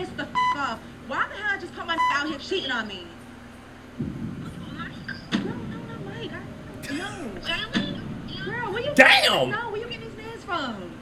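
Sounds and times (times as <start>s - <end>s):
low rumble of street noise: 0.0s - 11.0s
faint voices: 9.0s - 9.6s.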